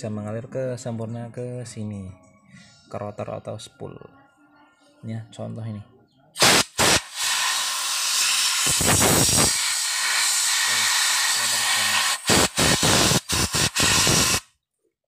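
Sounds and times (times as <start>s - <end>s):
pressurised air jet hissing: 6.4s - 14.4s.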